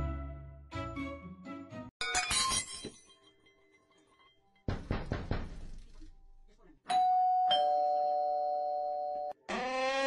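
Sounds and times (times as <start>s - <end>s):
knocks on a door: 4.7s - 5.7s
two-tone doorbell chime: 6.9s - 9.4s.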